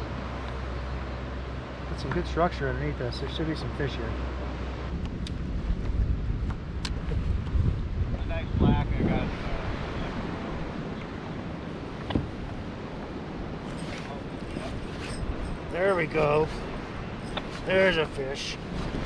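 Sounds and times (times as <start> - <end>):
wind buffeting microphone: 4.8 - 19.0.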